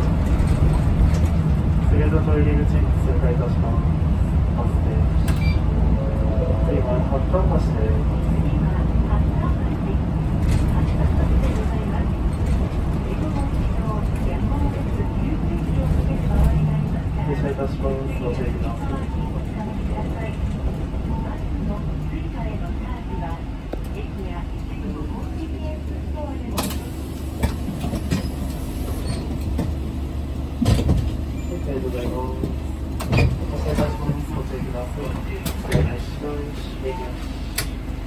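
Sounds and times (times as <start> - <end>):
bus engine and road rumble: 0.0 - 38.0
indistinct voices: 1.8 - 27.6.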